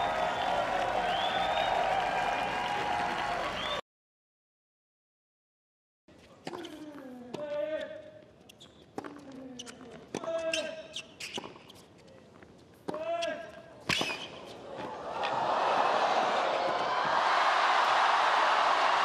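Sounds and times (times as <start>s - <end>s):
crowd noise: 0.0s - 3.8s, 14.3s - 19.0s
racket striking tennis ball: 13.8s - 14.9s.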